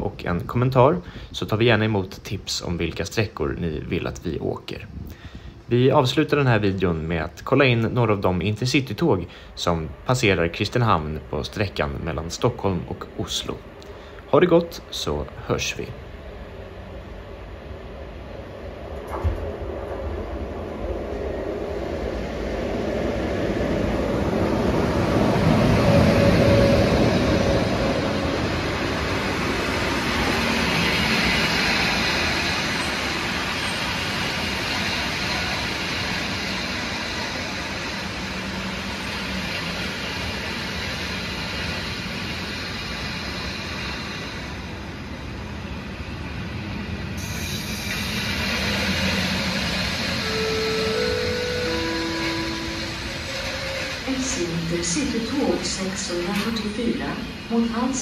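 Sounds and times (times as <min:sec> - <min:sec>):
train passing: 0:00.0 - 0:58.0
steel wheels rolling on rails: 0:46.9 - 0:58.0.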